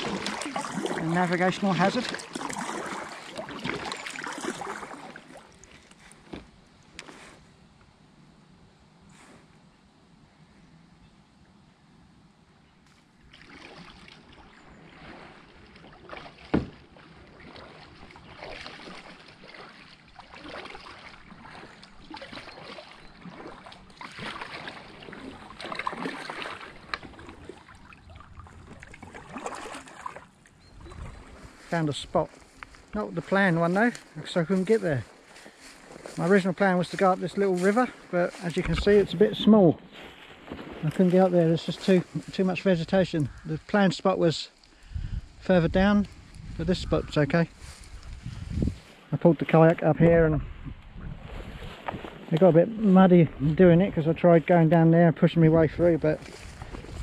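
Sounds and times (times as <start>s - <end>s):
kayak paddle splashing in water: 0.0s - 6.4s, 13.1s - 33.0s, 39.8s - 42.4s, 51.0s - 52.5s, 56.2s - 57.0s.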